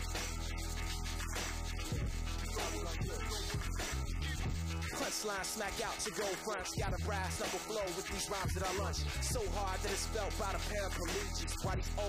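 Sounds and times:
hip hop beat: 0.0 - 12.0
person rapping: 1.8 - 12.0.

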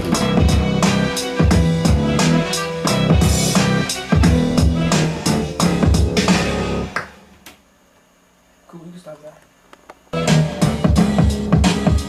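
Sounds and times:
programmed drum beat with bass: 0.0 - 7.0, 10.2 - 12.0.

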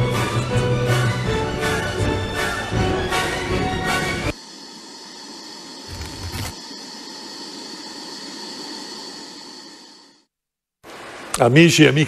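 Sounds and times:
hiss-like drone with held tones: 3.8 - 10.3.

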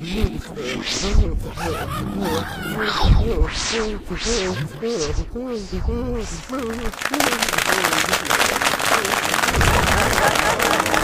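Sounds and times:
man laughing: 0.0 - 3.5, 4.4 - 5.3, 9.8 - 11.0
dense crackling noise: 3.0 - 11.0.

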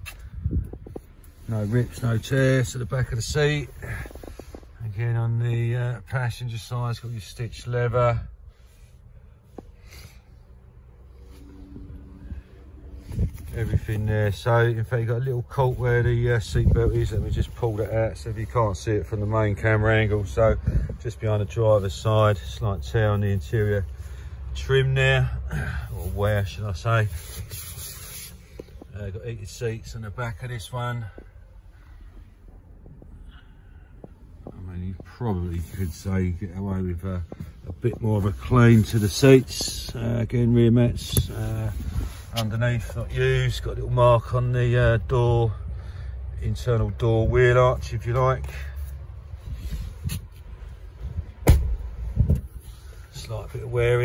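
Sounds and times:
hand rubbing leather upholstery: 1.3 - 4.8, 25.8 - 29.7, 34.7 - 43.0
low rumble: 10.3 - 14.1.

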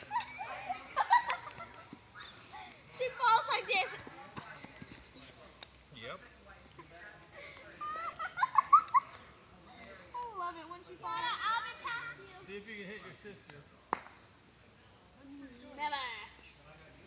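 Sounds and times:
children laughing and squealing: 0.0 - 4.1, 7.4 - 9.4.

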